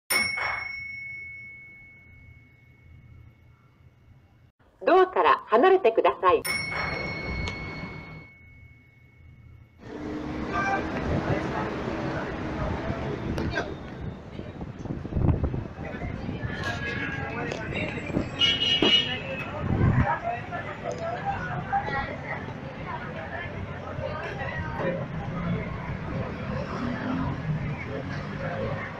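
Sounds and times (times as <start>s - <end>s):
elevator chime ding: 6.4s - 9.7s.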